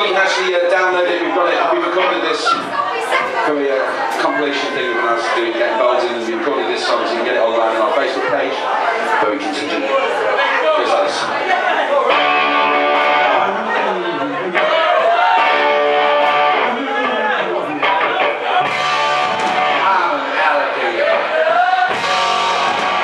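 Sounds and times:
electric guitar strumming chords: 12.1s - 17.2s, 17.8s - 20.3s, 21.9s - 23.0s.

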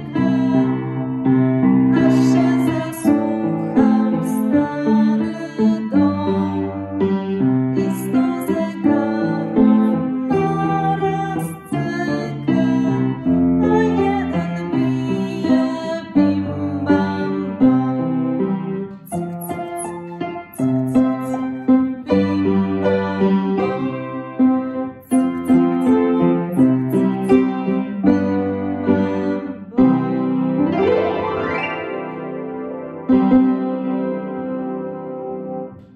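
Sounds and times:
piano playing chords: 0.0s - 35.9s.

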